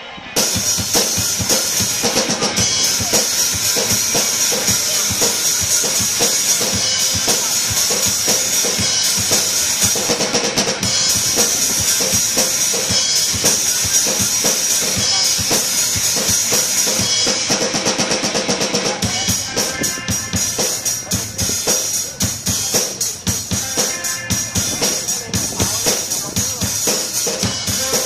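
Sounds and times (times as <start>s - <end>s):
drum kit playing: 0.0s - 28.0s.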